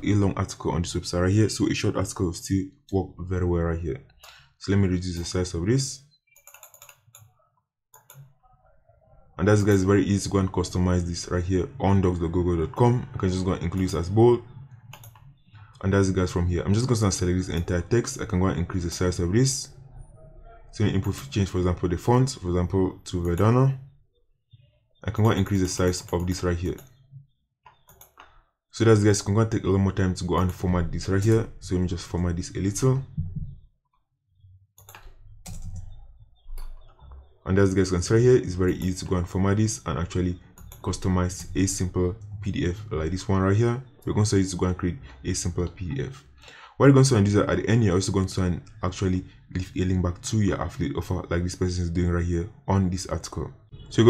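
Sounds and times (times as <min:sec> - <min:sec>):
faint computer clicks: 0:06.3 - 0:07.3, 0:08.0 - 0:08.3, 0:14.9 - 0:15.3, 0:27.7 - 0:28.4, 0:34.8 - 0:35.9.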